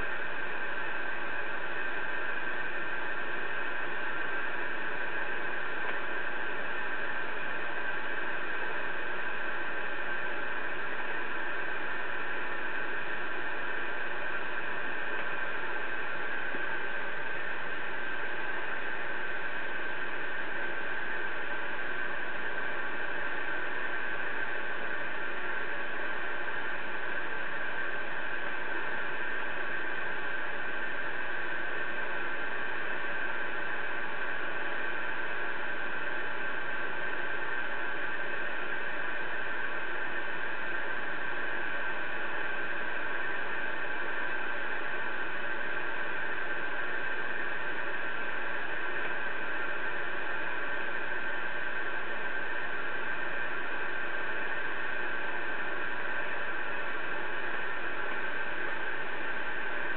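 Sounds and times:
radio static hiss: 0.0 - 59.9.

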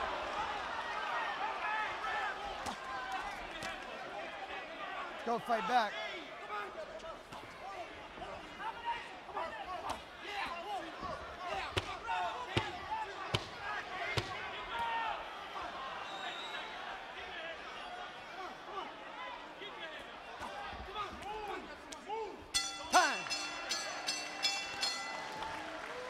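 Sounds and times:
crowd shouting: 0.0 - 26.0.

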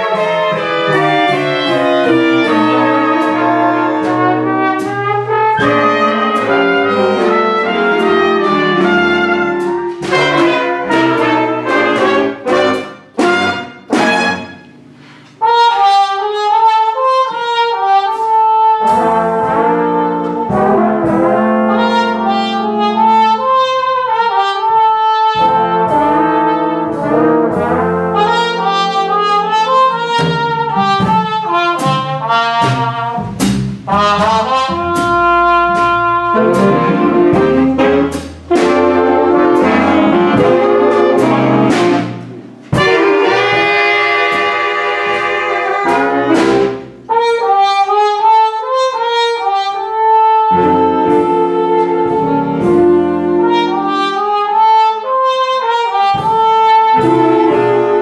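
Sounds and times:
jazz big band playing: 0.0 - 58.0
trumpet leading: 0.0 - 58.0.

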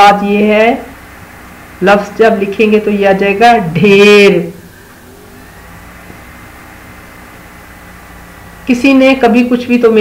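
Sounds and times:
faint high whine: 0.0 - 10.0
low background hum and hiss: 0.0 - 10.0.

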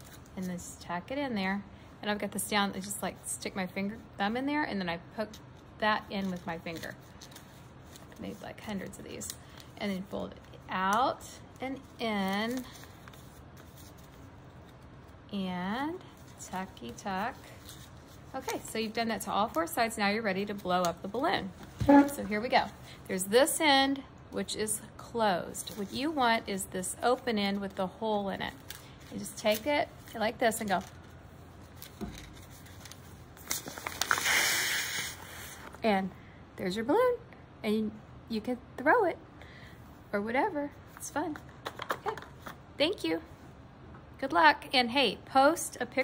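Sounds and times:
paper rustling while folded: 5.9 - 11.1, 11.7 - 15.1, 16.1 - 22.8, 27.0 - 35.8
paper crinkling: 11.7 - 14.9, 28.5 - 34.3
breath blowing into paper balloon: 34.0 - 35.8.

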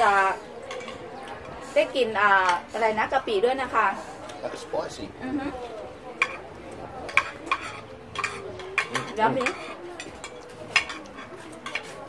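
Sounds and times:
cutlery clinking on plates: 0.0 - 1.6, 6.0 - 12.0.

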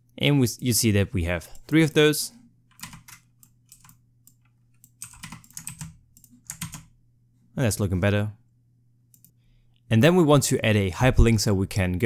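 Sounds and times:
typing on computer keyboard: 2.7 - 6.9.

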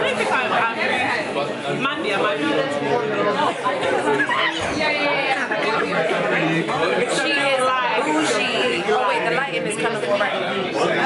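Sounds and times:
background diners' voices: 0.0 - 11.0
group chattering at table: 0.0 - 11.0.

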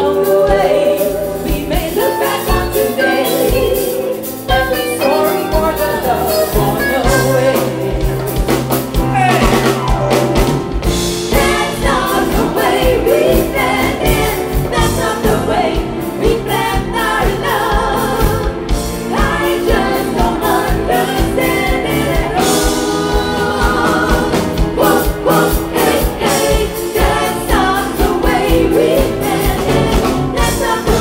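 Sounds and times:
woman singing lead: 0.0 - 10.0, 11.3 - 31.0
drum kit: 0.0 - 31.0
live pop band: 0.0 - 31.0.

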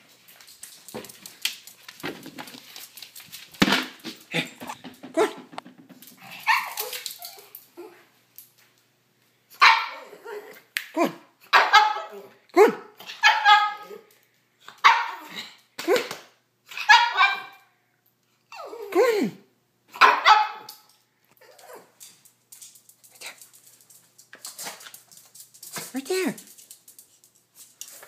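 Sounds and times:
rustling: 0.0 - 7.7
dog barking: 9.6 - 10.1, 11.0 - 14.0, 14.8 - 16.0, 16.8 - 17.6, 20.0 - 20.7.

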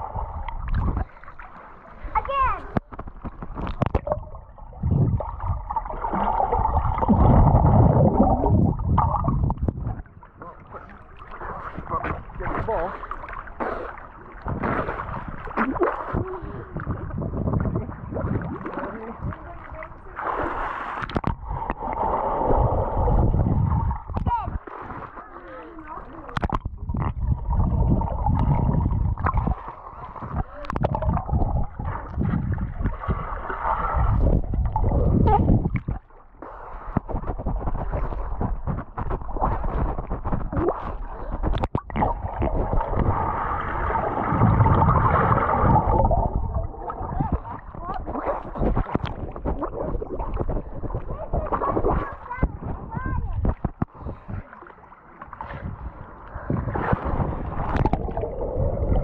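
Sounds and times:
pool water sloshing and splashing: 0.0 - 59.0.

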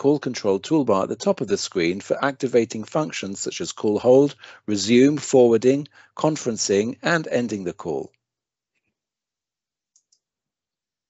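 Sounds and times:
computer mouse clicks: 9.9 - 10.2.

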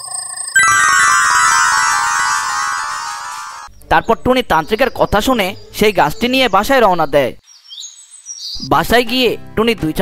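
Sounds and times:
bird chirping: 7.5 - 8.7.

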